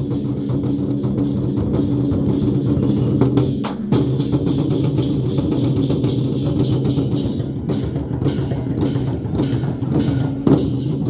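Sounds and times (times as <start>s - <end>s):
large drums beaten fast: 0.0s - 11.0s.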